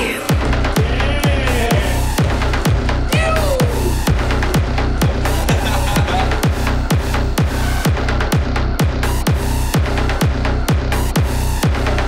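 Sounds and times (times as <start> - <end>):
electronic dance music: 0.0 - 12.0
kick drum: 0.3 - 12.0.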